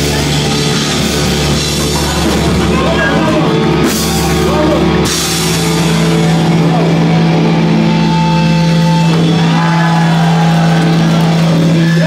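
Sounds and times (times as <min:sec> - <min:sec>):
distorted guitar and bass: 0:00.0 - 0:12.0
punk band playing loudly: 0:00.0 - 0:12.0.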